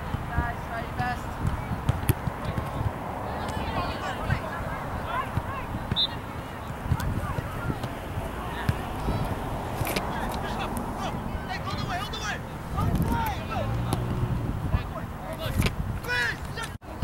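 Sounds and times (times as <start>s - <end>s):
wind rumbling on microphone: 0.0s - 11.5s, 12.6s - 16.1s
people shouting and calling: 3.3s - 9.5s, 10.1s - 14.1s, 14.8s - 16.8s.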